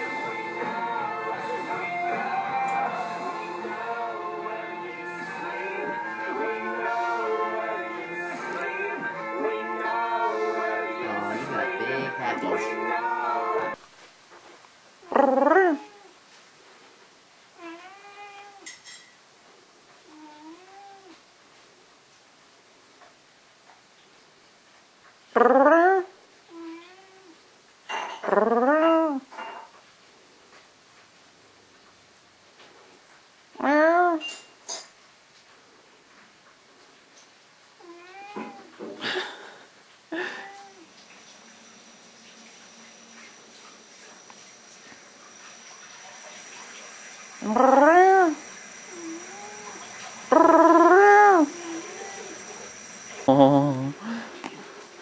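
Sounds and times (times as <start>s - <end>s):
cat meowing: 17.6s - 18.7s, 20.1s - 21.2s, 26.5s - 27.4s, 37.8s - 38.8s, 40.2s - 40.9s, 47.4s - 52.3s
cat meowing raspily: 37.8s - 38.7s.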